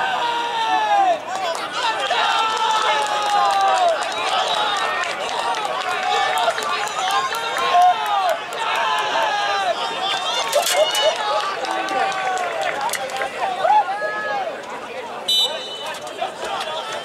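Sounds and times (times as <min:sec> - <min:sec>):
crowd chattering and calling out: 0:00.0 - 0:17.0.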